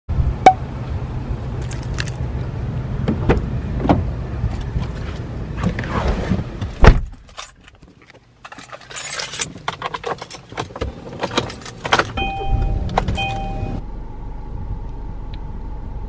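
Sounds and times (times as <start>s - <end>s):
outdoor rumble: 0.1s - 16.0s.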